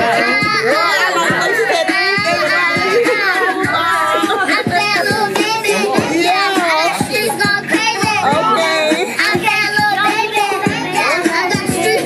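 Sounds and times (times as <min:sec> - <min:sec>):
drum beat: 0:00.0 - 0:12.0
high sung vocal: 0:00.0 - 0:12.0.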